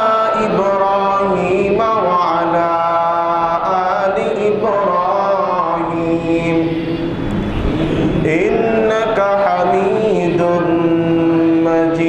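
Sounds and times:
man chanting through loudspeaker: 0:00.0 - 0:07.2, 0:08.0 - 0:12.0.

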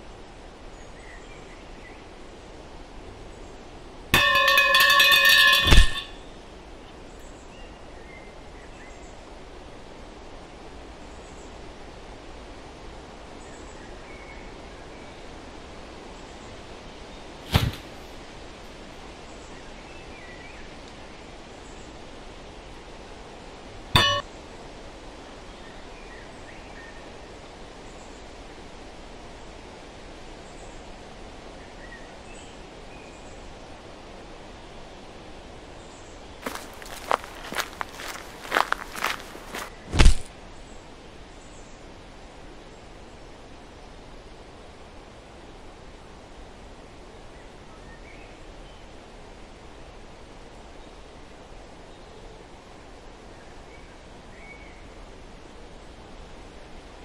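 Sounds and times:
wooden stick knocks and clacks: 0:04.2 - 0:06.2
sharp hits with ringing tone: 0:04.2 - 0:06.3, 0:24.0 - 0:24.2
outdoor hiss: 0:06.4 - 0:46.9.

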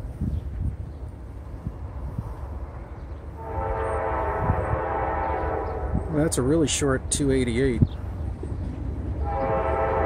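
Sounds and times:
locomotive air horn: 0:03.4 - 0:06.1, 0:09.2 - 0:10.0.

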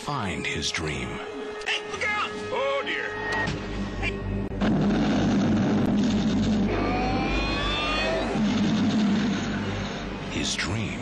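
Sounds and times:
steady low drone: 0:03.2 - 0:11.0.

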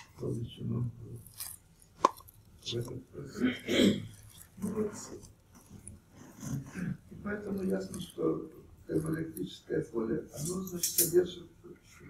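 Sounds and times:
speech sounds: 0:00.2 - 0:01.3, 0:02.6 - 0:05.3, 0:06.4 - 0:12.0.

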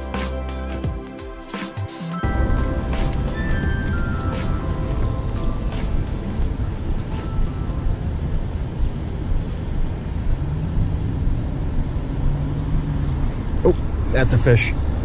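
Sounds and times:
background music: 0:00.0 - 0:09.3
steady low rumble: 0:02.2 - 0:15.0
vehicle engine hum: 0:02.2 - 0:15.0.

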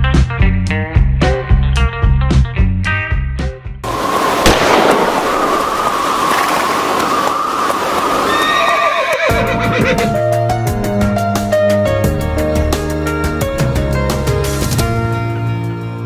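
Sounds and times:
music: 0:00.0 - 0:03.9, 0:09.3 - 0:16.0
loud rushing noise: 0:03.8 - 0:08.4
sharp crack: 0:04.0 - 0:08.3
horse whinnying: 0:08.2 - 0:10.2.

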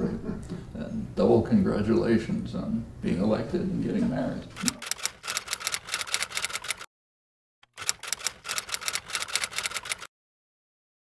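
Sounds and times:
typewriter key clicks: 0:07.7 - 0:10.1.

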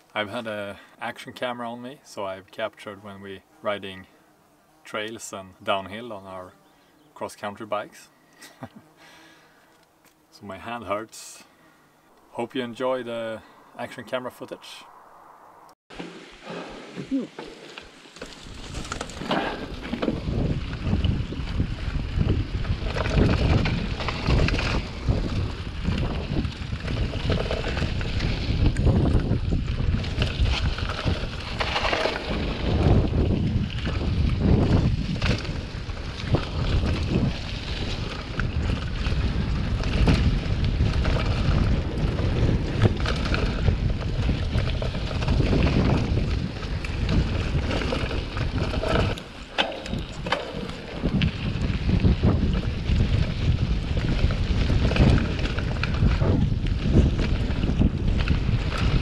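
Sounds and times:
low rumble of bike ride: 0:00.0 - 0:59.0
wind rushing over microphone: 0:18.5 - 0:59.0.

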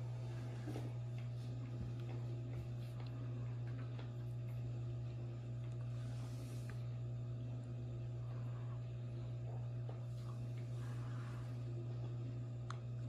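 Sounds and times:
low kitchen hum: 0:00.0 - 0:13.0.

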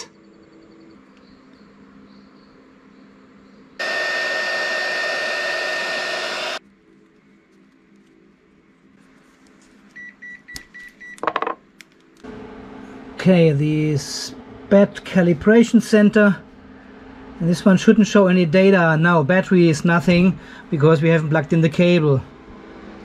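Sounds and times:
heat gun blowing with high whine: 0:03.8 - 0:06.6.

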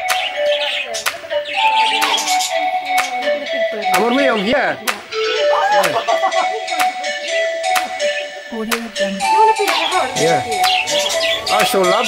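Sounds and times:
budgerigars chirping: 0:00.0 - 0:08.4, 0:09.3 - 0:12.0
background music: 0:00.0 - 0:12.0.

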